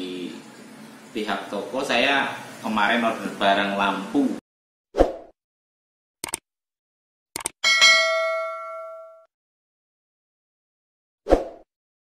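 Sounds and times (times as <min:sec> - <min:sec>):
notification bell ding: 0:07.6 - 0:09.3.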